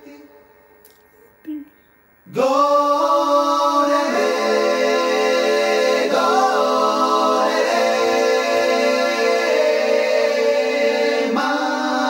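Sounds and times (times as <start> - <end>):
male voices singing in harmony: 2.3 - 12.0.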